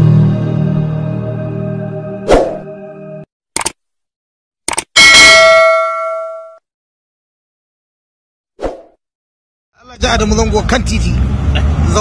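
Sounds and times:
short clicks: 3.6 - 3.8, 4.7 - 4.9
bright bell-like ding: 5.0 - 6.6.

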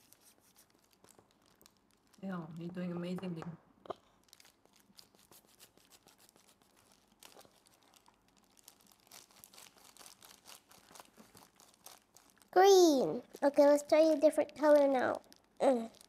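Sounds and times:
plastic gloves crinkling: 0.0 - 16.0.

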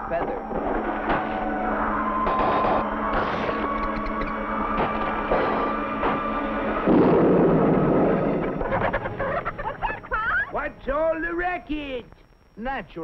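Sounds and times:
rising and falling calls: 0.5 - 6.8
cartoon crashing noise: 2.2 - 4.2.

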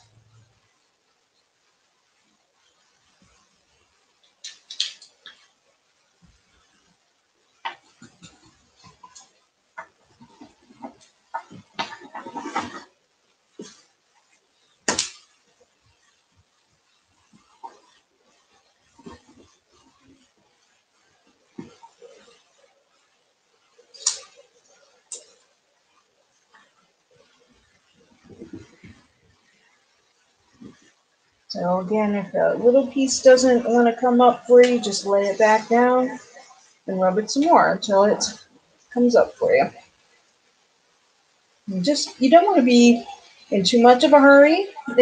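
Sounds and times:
scratching and rubbing on wood: 6.2 - 39.8.

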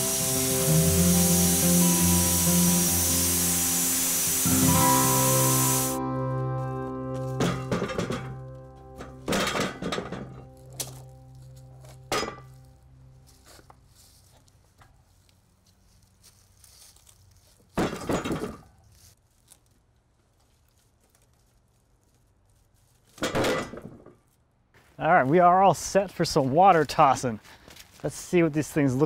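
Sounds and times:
background music: 0.0 - 13.6
wooden slabs thudding on ground: 17.7 - 18.8.

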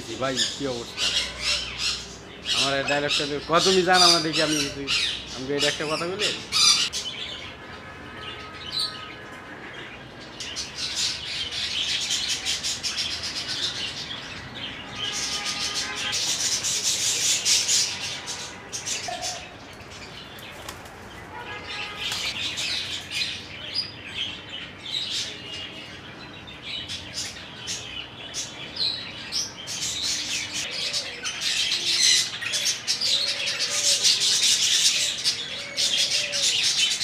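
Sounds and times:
birds chirping and twittering: 0.0 - 37.0.

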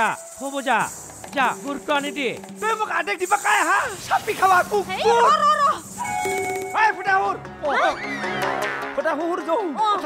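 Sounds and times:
insect-like chirring: 0.0 - 7.1.

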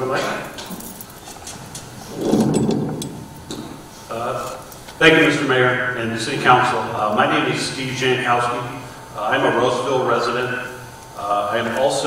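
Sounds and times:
microphone handling rustle: 1.2 - 5.0.

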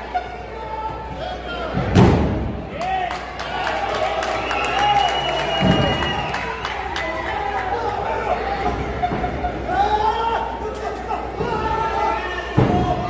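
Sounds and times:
people shouting: 2.8 - 13.0.

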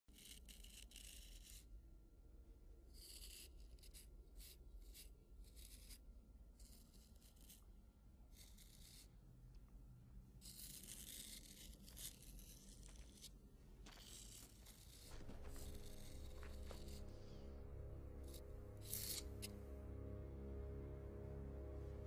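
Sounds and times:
razor scraping stubble: 8.4 - 9.2, 10.4 - 19.6
steady low rumble: 14.7 - 22.0.

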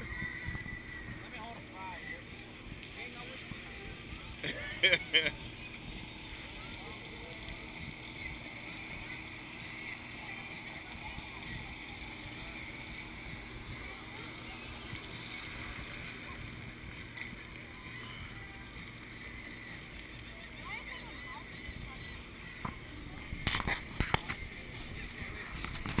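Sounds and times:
wind and sea noise: 0.0 - 2.3
faint passenger chatter: 0.0 - 26.0
low steady hum: 0.0 - 26.0.

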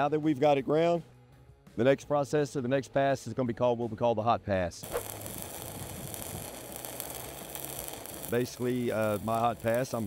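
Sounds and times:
welding arc crackling: 4.8 - 10.0.

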